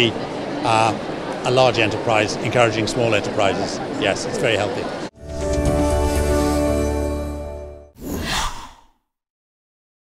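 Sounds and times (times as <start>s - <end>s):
breathy whoosh: 8.0s - 9.0s.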